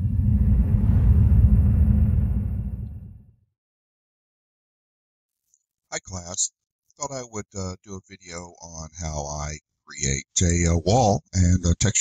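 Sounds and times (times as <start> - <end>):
deep rumbling logo sound effect: 0.0 - 3.4.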